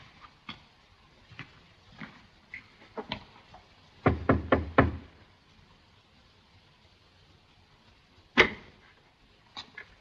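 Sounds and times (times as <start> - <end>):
knocking on wooden door: 4.0 - 5.0.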